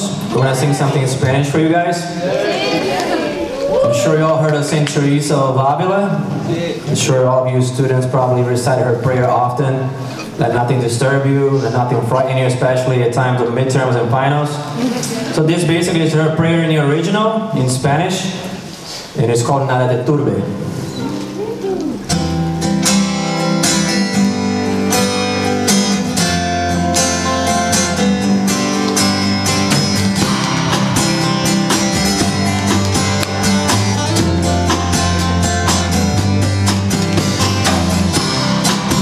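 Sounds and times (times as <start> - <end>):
acoustic guitars strumming: 4.2 - 39.0.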